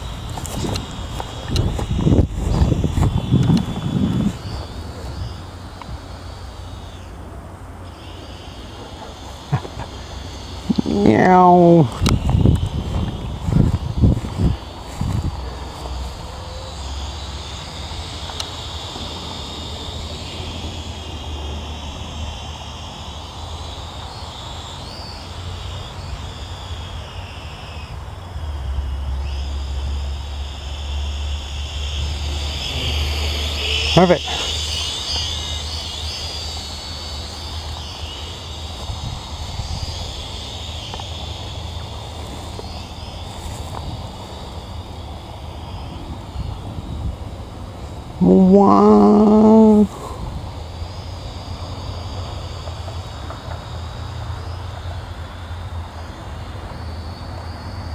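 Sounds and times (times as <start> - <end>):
wind rumbling on microphone: 0.0 - 7.8, 8.5 - 48.6, 49.2 - 54.0
drone propellers whining: 0.0 - 57.9.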